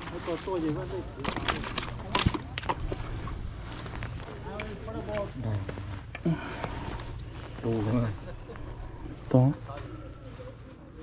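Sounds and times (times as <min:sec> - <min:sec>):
indistinct voices talking: 0:00.0 - 0:11.0
low rumble: 0:02.8 - 0:11.0.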